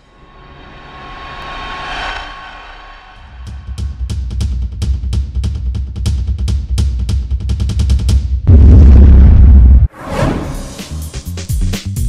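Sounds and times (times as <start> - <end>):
rumbling jet-like whoosh: 0.2 - 3.8.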